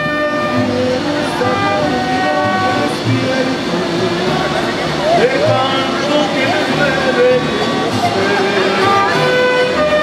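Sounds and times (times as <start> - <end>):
strummed guitars: 0.0 - 10.0
trumpets: 0.0 - 10.0
violins: 0.0 - 10.0.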